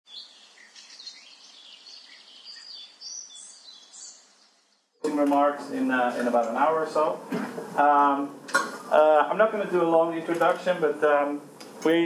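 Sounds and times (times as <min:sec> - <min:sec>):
birds chirping: 0:00.1 - 0:05.9.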